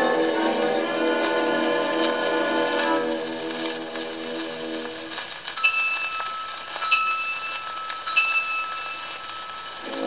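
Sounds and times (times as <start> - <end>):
orchestra on old record: 0.0 - 10.0
record surface hiss: 0.0 - 10.0.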